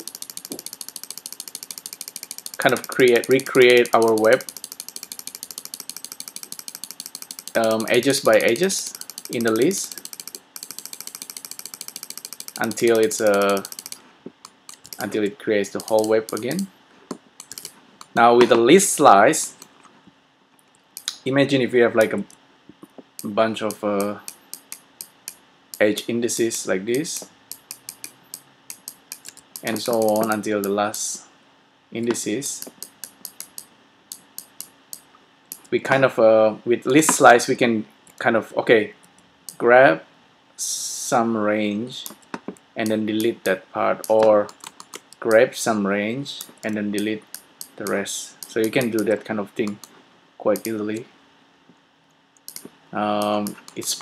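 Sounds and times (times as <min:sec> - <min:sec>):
mouse scroll wheel clicking: 0:00.0 - 0:16.7, 0:17.4 - 0:18.2, 0:23.2 - 0:25.9, 0:26.9 - 0:30.8, 0:32.6 - 0:35.7, 0:42.0 - 0:45.4, 0:46.4 - 0:49.9, 0:50.6 - 0:50.8, 0:52.4 - 0:54.0.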